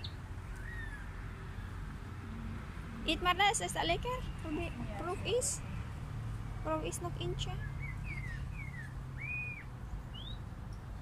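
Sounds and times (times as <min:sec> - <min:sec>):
low steady background rumble: 0:00.0 - 0:11.0
bird whistling call: 0:07.8 - 0:10.4.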